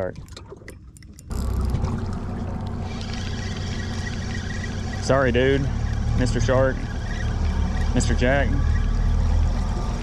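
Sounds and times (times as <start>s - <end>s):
spinning reel whirring: 2.3s - 10.0s.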